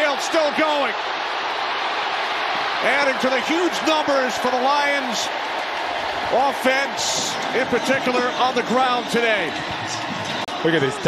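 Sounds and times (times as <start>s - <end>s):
commentator talking: 0.0s - 1.0s, 2.8s - 5.3s, 6.3s - 11.0s
stadium crowd cheering: 0.0s - 11.0s.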